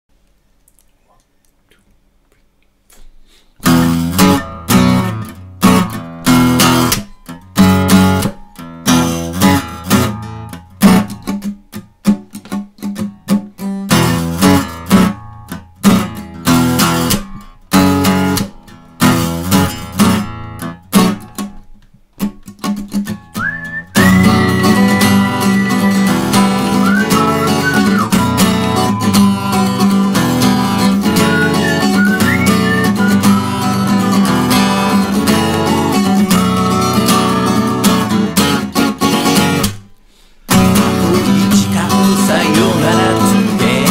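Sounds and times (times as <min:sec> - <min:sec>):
acoustic guitar strumming chords: 0:03.6 - 0:21.5, 0:22.2 - 0:43.9
high held melody with pitch bends: 0:23.4 - 0:35.0.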